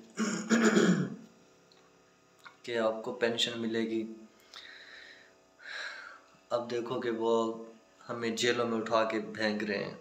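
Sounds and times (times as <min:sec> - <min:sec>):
man clearing his throat: 0:00.2 - 0:01.2.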